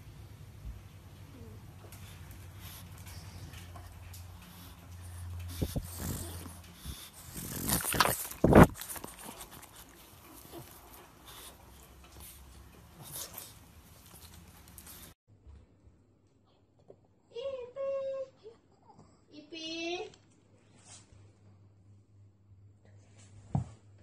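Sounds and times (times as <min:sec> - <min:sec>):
pug making sounds: 0:01.3 - 0:15.1.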